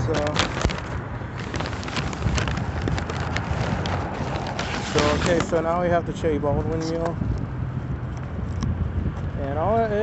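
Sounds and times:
paper bag rustling: 0.0 - 6.0
wind on microphone: 0.0 - 10.0.

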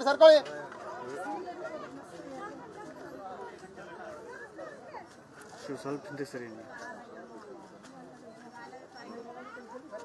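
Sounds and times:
chatter of people talking: 0.0 - 10.0.

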